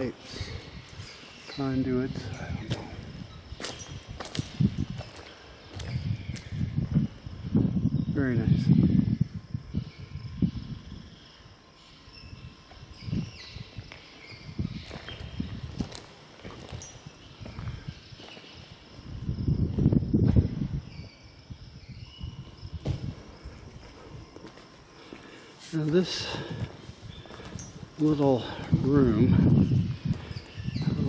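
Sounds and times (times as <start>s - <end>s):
small birds chirping: 0.0s - 31.0s
footsteps scuffing on concrete: 2.6s - 6.5s, 13.8s - 18.6s, 22.8s - 28.5s, 29.4s - 30.8s.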